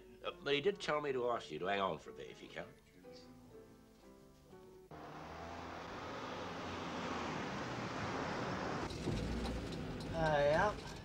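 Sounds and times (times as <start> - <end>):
faint music: 0.0 - 4.9
car engine and road noise: 4.9 - 11.0.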